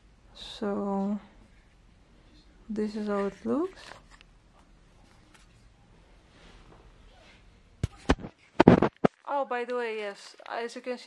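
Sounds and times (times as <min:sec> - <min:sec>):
knocking and rustling: 0:07.8 - 0:09.2
microphone handling noise: 0:07.8 - 0:09.2.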